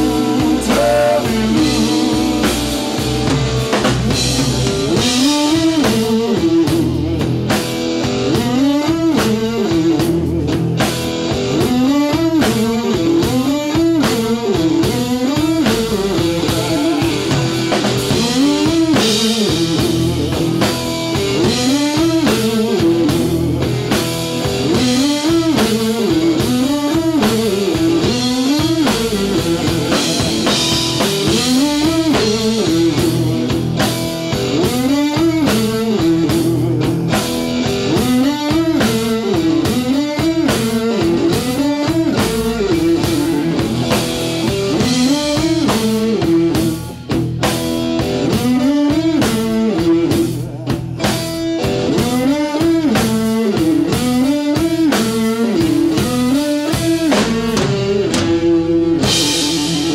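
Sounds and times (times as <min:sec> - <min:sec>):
drum kit: 0:00.0 - 0:59.9
electric guitar riff: 0:00.0 - 0:59.9.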